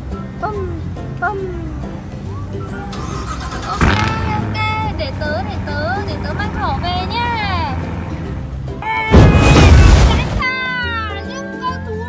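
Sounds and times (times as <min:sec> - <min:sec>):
background music: 0:00.0 - 0:12.0
sudden hit: 0:09.1 - 0:10.4.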